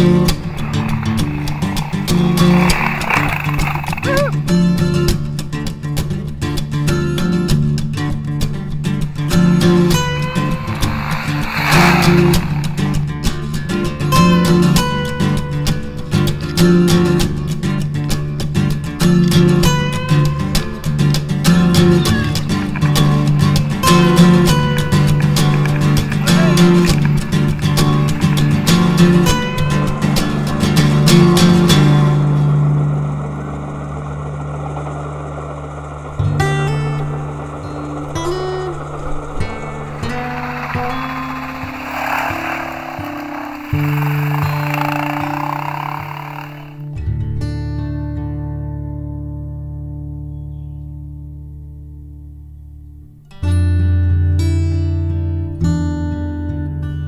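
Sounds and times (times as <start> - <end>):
guitar strumming and chords: 0.0 - 34.4, 36.1 - 50.4.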